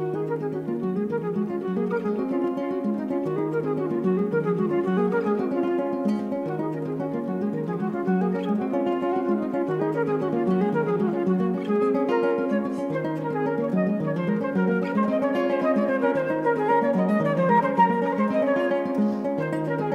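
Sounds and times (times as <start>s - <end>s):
classical guitar plucked notes: 0.0s - 19.9s.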